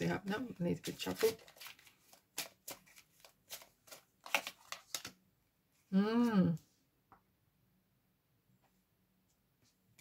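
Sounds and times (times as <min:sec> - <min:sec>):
cards being shuffled: 0:00.8 - 0:05.2.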